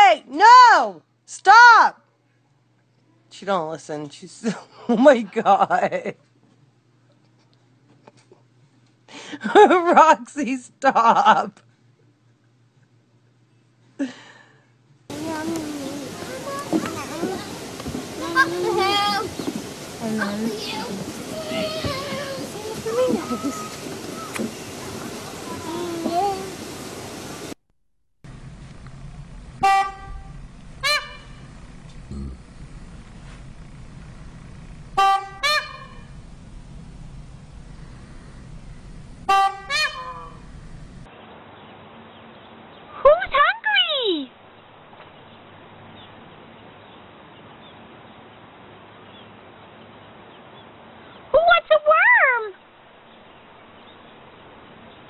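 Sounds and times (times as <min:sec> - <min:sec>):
peacock calling: 0:15.1 - 0:26.6, 0:29.6 - 0:41.0.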